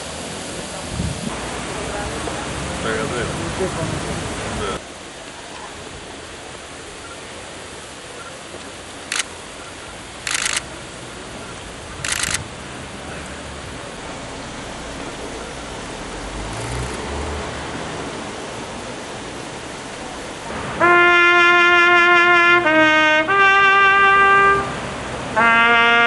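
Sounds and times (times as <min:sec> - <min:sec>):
outdoor background noise: 0:00.0 - 0:26.0
camera shutters clicking: 0:09.1 - 0:09.3, 0:10.3 - 0:10.7, 0:12.0 - 0:12.4.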